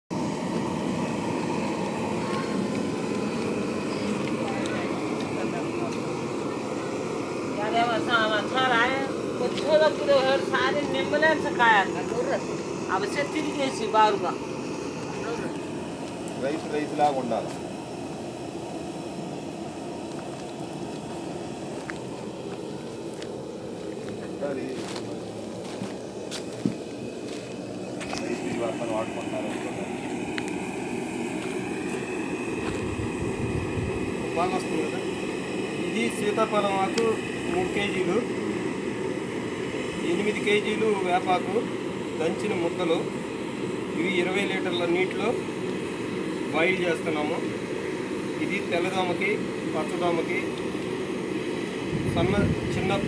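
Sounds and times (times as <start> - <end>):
gas burner rushing: 0.1 - 53.0.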